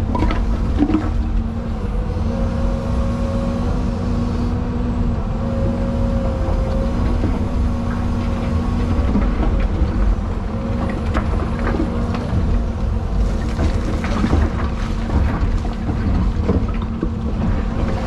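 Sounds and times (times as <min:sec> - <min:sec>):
hydraulic whine: 0:00.0 - 0:12.9
excavator engine rumbling: 0:00.0 - 0:18.0.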